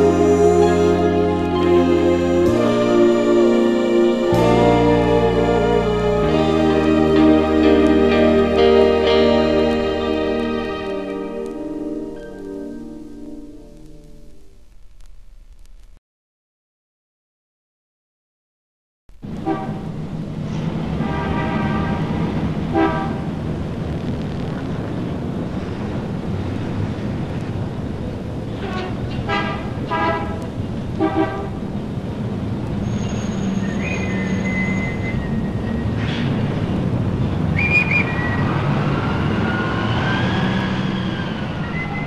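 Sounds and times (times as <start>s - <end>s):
traffic engine rumble: 0.0s - 12.8s, 19.2s - 42.0s
gliding pitched tones: 0.0s - 14.3s
car horns honking: 19.2s - 20.0s, 20.9s - 23.4s, 28.6s - 31.7s.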